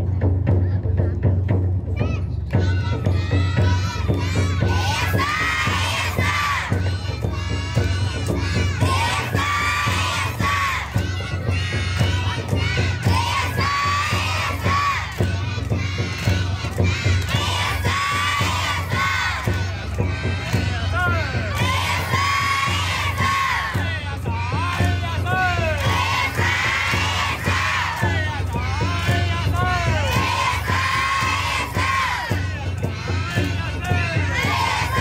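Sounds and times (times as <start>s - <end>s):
drum beat: 0.0s - 35.0s
children shouting in chorus: 2.0s - 19.5s, 30.2s - 32.4s, 34.3s - 35.0s.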